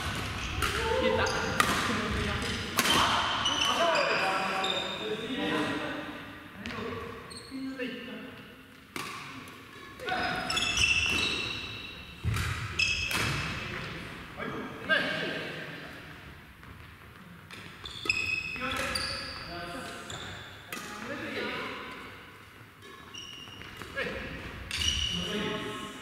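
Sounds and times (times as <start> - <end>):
sneakers squeaking on wooden floor: 0.0 - 1.6, 2.4 - 5.3, 6.6 - 7.8, 9.7 - 13.5, 16.6 - 20.7, 22.8 - 25.4
racket striking shuttlecock: 1.5 - 3.3, 8.9 - 9.9.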